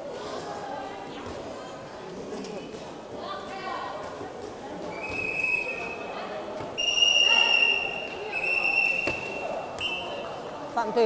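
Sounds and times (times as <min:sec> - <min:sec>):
low crowd murmur: 0:00.0 - 0:11.0
sports whistle blasts: 0:05.0 - 0:06.1, 0:06.8 - 0:10.4.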